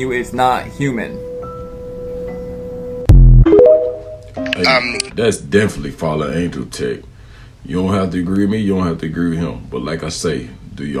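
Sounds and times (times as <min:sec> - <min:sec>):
fainter higher tone: 0:01.1 - 0:05.1
sustained musical tone: 0:03.1 - 0:05.1.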